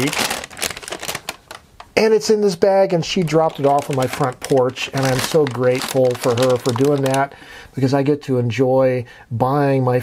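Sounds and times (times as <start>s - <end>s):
paper bag rustling and crinkling: 0.0s - 1.7s, 3.0s - 7.4s.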